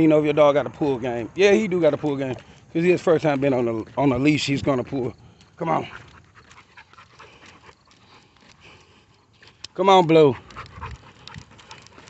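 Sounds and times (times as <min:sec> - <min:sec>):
dog panting: 0:05.3 - 0:12.0.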